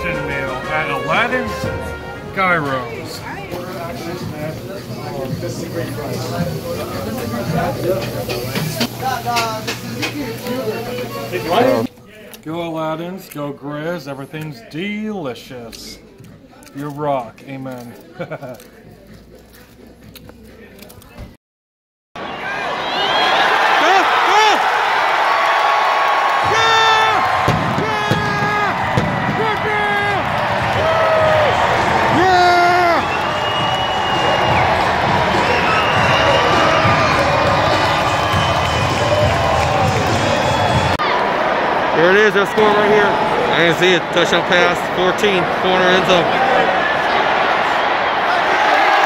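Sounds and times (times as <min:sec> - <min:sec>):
stadium crowd cheering: 0:00.0 - 0:11.9, 0:22.2 - 0:49.0.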